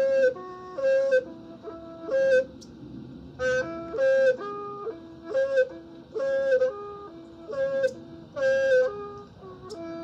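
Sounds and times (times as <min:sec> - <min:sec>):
bamboo flute melody: 0:00.0 - 0:10.0.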